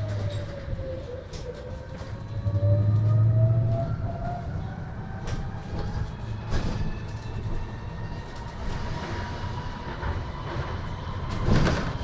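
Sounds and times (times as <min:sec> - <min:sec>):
road rumble: 0:00.0 - 0:12.0.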